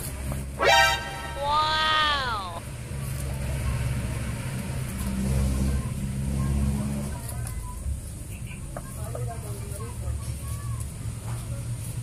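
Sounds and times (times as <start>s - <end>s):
vehicle engine running: 0.0s - 12.0s
falling tone: 0.6s - 2.6s.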